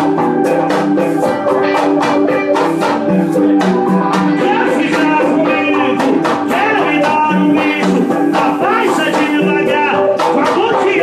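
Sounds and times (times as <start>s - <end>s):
fast percussion beat: 0.0s - 11.0s
keyboard playing chords and melody: 0.0s - 11.0s.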